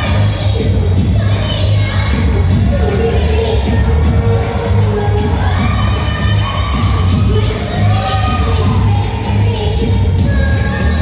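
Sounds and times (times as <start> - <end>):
audience cheering and shouting: 0.0 - 11.0
dance music with heavy bass: 0.0 - 11.0.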